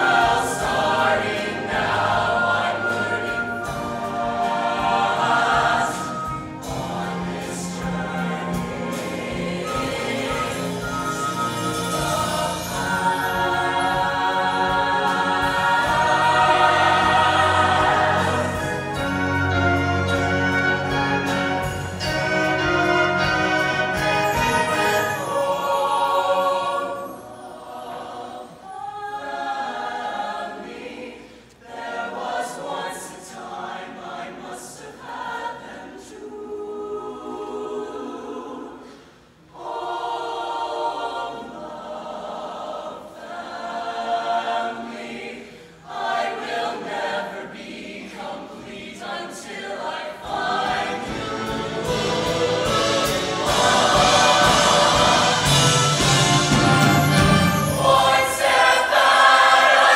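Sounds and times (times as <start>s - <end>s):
choir of mixed voices singing: 0.0s - 59.9s.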